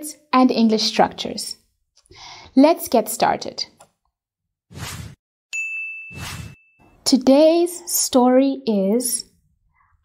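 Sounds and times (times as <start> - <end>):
bright ringing ding: 5.5 - 7.0
whoosh: 6.1 - 6.6.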